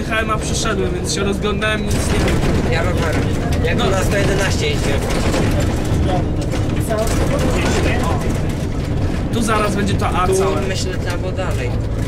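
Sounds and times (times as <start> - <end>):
bus body knocks and rattles: 0.0 - 12.0
bus engine and tyres rumbling: 0.0 - 12.0.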